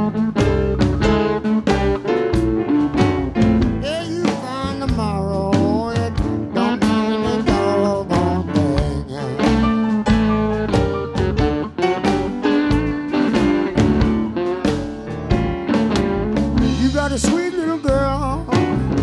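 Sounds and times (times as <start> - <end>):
drums: 0.0 - 19.0
electric slide guitar: 0.0 - 19.0
man singing: 3.8 - 10.0, 16.6 - 19.0.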